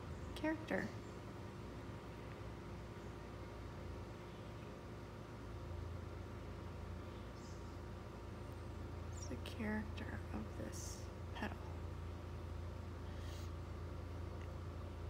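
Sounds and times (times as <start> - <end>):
low steady hum: 0.0 - 15.0
faint hiss: 12.9 - 14.4.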